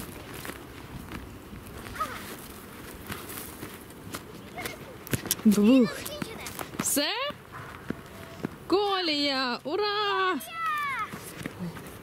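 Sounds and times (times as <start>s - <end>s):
footsteps on dirt track: 0.0s - 9.4s, 10.2s - 12.0s.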